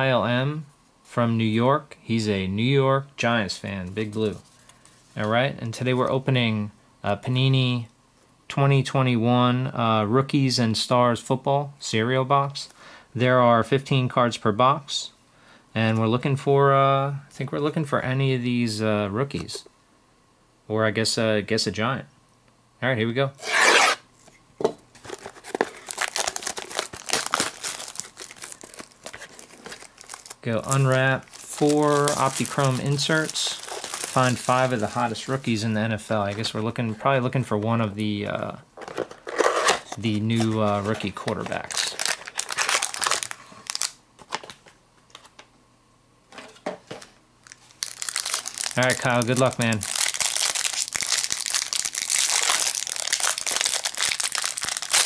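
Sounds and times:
plastic wrapper crinkling and tearing: 25.0s - 35.6s, 38.8s - 44.7s, 47.4s - 55.0s.

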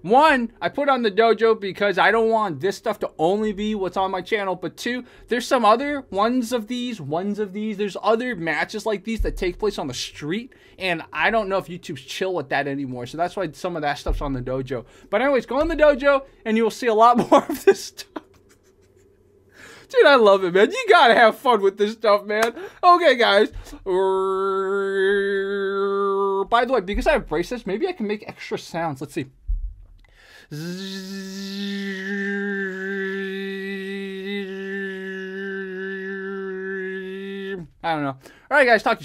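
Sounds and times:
man's voice: 0.0s - 18.2s, 19.9s - 29.3s, 30.5s - 39.0s
faint room hum: 0.0s - 39.0s
man breathing in: 10.5s - 10.8s, 19.5s - 19.9s, 30.0s - 30.6s, 38.2s - 38.5s
man humming a drone note: 30.5s - 37.6s.

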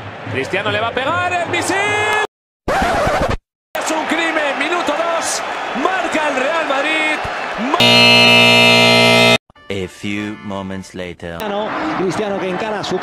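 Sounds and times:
held electronic tone: 7.8s - 9.4s.

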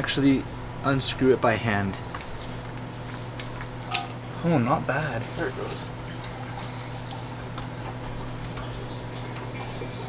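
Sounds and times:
steady low hum: 0.0s - 10.0s
oil draining into a pan: 6.0s - 10.0s.

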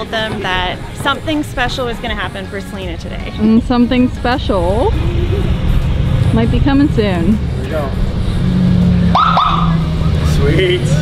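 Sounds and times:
vehicle engines idling: 0.0s - 11.0s
police siren chirp: 9.1s - 10.4s.

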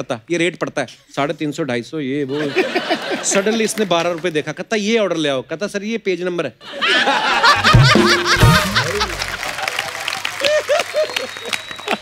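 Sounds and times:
audience laughing loudly: 2.3s - 4.0s, 6.6s - 12.0s
comic music: 7.5s - 9.7s.

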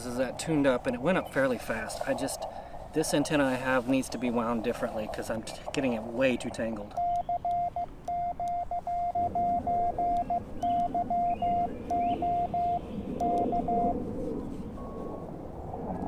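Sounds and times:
short steady tone: 7.0s - 13.9s
morse code tone: 7.0s - 14.0s.

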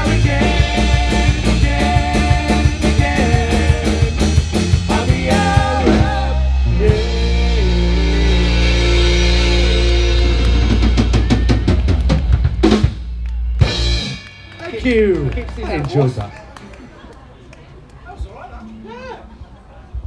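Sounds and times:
rock band playing: 0.0s - 15.8s.

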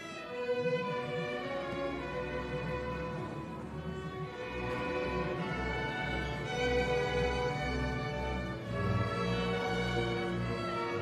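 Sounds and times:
string orchestra playing: 0.0s - 11.0s.

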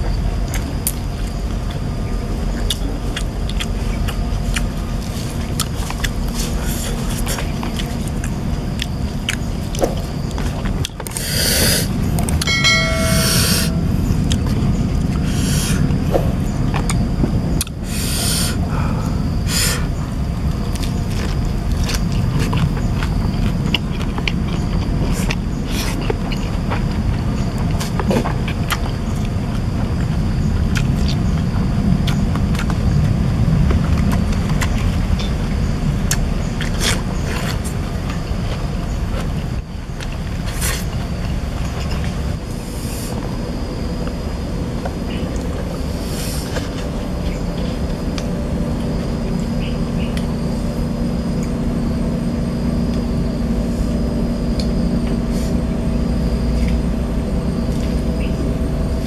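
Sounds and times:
steady low rumble: 0.0s - 59.0s
man chewing food: 0.2s - 51.7s
ringing bell ding: 12.4s - 14.0s.

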